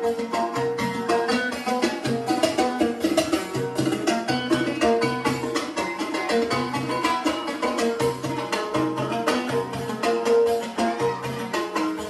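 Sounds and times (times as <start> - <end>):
fast hand drum rhythm: 0.0 - 12.0.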